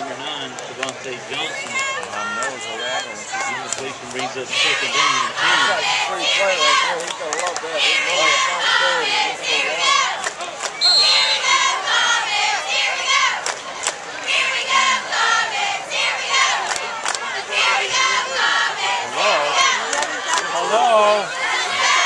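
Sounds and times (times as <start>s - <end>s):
crowd yelling and cheering: 0.0s - 22.0s.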